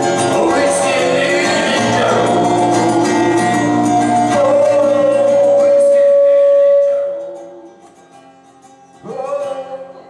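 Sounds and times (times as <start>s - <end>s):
acoustic guitar: 0.0s - 10.0s
man singing a long note: 0.3s - 7.7s.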